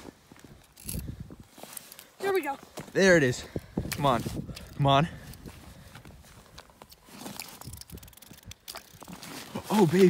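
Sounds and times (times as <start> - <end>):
snow and clothing rustling: 0.0 - 7.7, 8.7 - 10.0
light crunches and clicks: 3.9 - 10.0.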